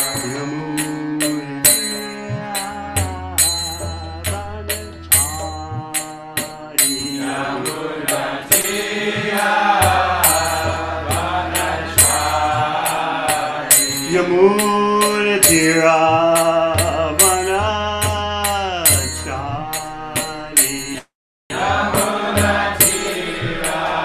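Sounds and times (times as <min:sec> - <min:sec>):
man chanting a mantra: 0:00.0 - 0:03.4
hand cymbals striking a beat: 0:00.0 - 0:24.0.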